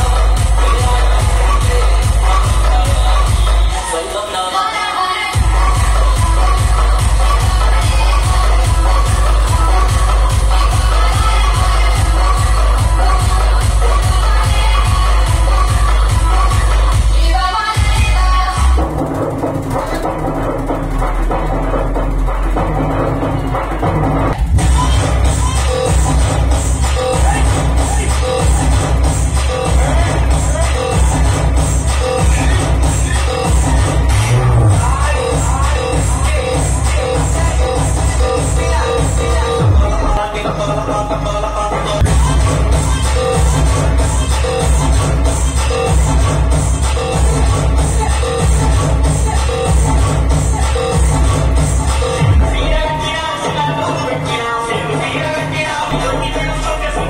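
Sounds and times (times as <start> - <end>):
dance music with heavy bass: 0.0 - 57.0.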